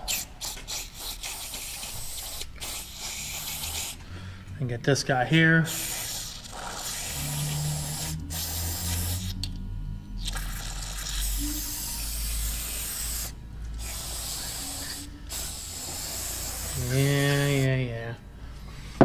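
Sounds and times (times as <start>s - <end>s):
aerosol spray hissing: 0.0s - 4.0s, 5.7s - 9.4s, 10.2s - 17.7s.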